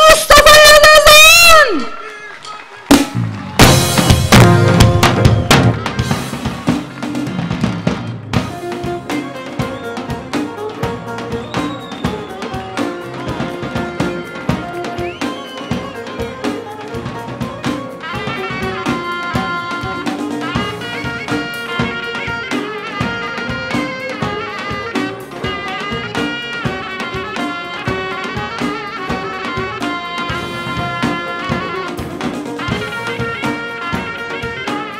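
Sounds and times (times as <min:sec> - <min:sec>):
pitched melody line: 0:00.1 - 0:07.4, 0:08.0 - 0:34.9
drum kit steady beat: 0:02.5 - 0:34.9.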